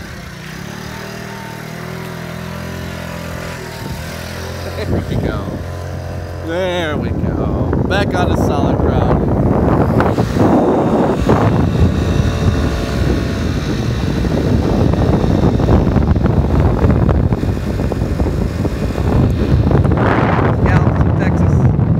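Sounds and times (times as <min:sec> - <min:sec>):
moped engine running: 0:00.0 - 0:21.9
wind buffeting microphone: 0:01.8 - 0:21.9.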